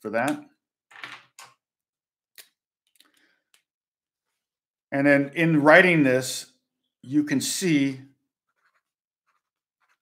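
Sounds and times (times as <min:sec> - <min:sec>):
pen writing on paper: 0:08.5 - 0:10.0.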